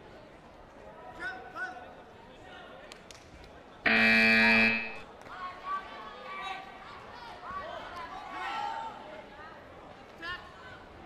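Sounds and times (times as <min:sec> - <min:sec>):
scoreboard buzzer tone: 0:03.9 - 0:05.0.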